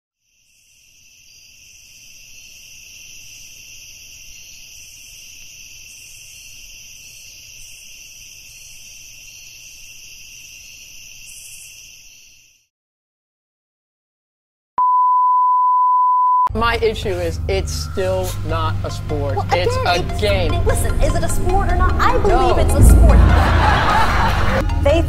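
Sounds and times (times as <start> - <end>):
low rumble: 20.6 - 24.6.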